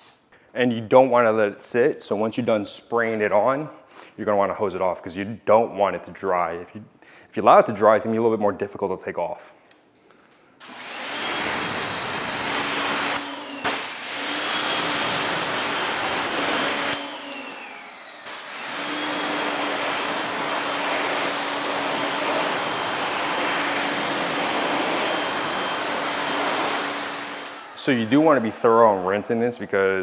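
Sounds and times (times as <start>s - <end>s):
pressure washer water jet hissing: 10.6s - 30.0s.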